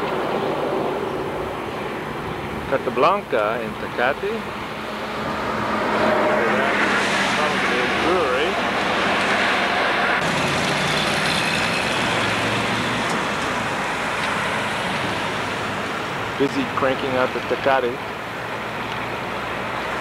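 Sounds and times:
passing car traffic: 0.0 - 20.0.

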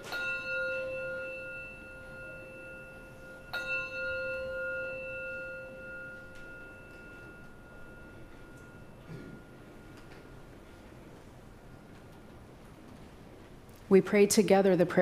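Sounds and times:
bell ringing: 0.0 - 11.2.

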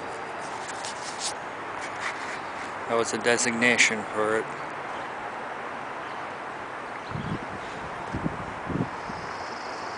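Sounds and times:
outdoor background noise: 0.0 - 9.9
person speaking: 2.8 - 4.6.

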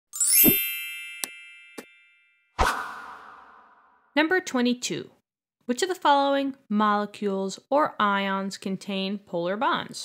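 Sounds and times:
bell-like chime tones: 0.1 - 2.6
rising shimmer with thud: 2.6 - 4.0.

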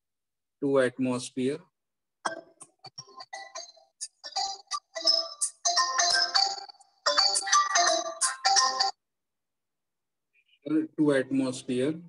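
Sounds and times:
phone ringtone melody: 2.3 - 9.0.

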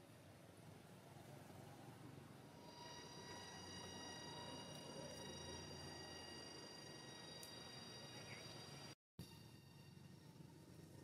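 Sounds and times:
steady high-pitched whine: 0.0 - 11.0.

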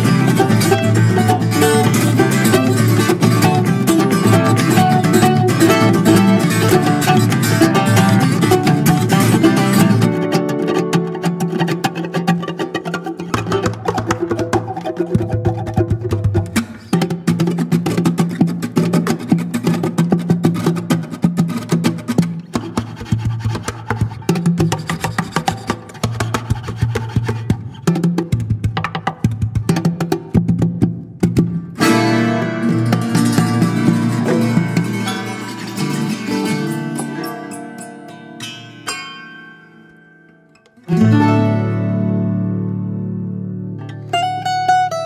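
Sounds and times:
plucked string duo music: 0.0 - 45.0.

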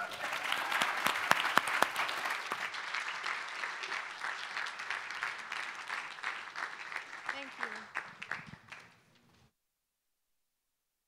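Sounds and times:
audience applauding: 0.0 - 9.1.

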